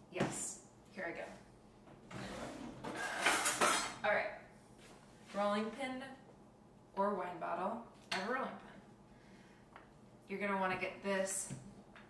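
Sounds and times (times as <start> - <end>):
utensils and dishes clattering: 2.2 - 4.0.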